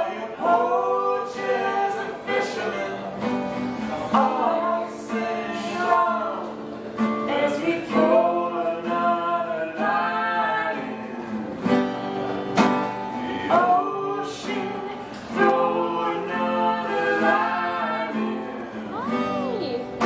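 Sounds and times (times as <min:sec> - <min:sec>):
strummed guitar: 0:00.0 - 0:20.0
woman and man singing folk song: 0:00.0 - 0:20.0.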